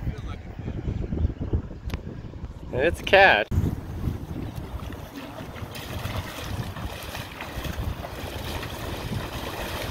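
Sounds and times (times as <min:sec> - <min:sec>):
wind rumbling on microphone: 0:00.0 - 0:09.9
footsteps splashing through water: 0:03.9 - 0:09.9.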